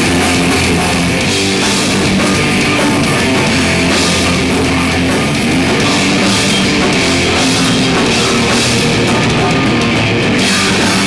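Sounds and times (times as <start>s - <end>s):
distorted electric guitars: 0.0s - 11.0s
drum kit: 0.0s - 11.0s
singer's vocals: 5.7s - 11.0s.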